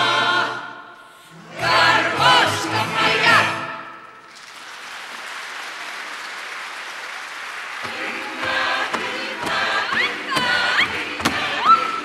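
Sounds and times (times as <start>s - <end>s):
audience applauding: 4.2s - 11.1s.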